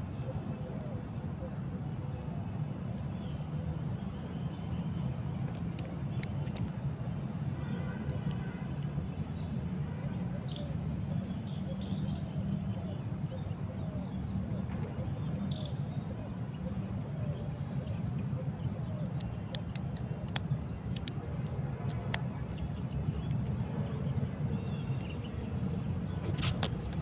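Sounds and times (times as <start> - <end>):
handling plastic phone mount: 5.4 - 6.7, 19.1 - 22.2
sharp plastic clicks: 5.4 - 6.8, 19.0 - 22.4.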